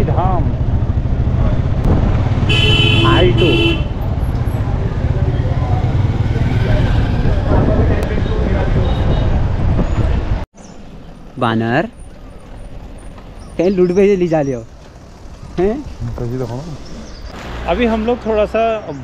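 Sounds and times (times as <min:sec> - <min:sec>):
motorcycle engine rumbling: 0:00.0 - 0:19.0
vehicle horn blasts: 0:02.5 - 0:04.0
wind on microphone: 0:06.3 - 0:10.4.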